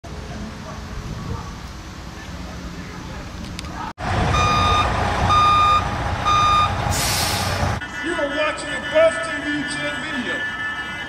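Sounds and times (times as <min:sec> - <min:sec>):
low engine rumble: 0:00.1 - 0:07.8
reversing alarm beeping: 0:04.3 - 0:07.1
hissing air burst: 0:06.9 - 0:07.8.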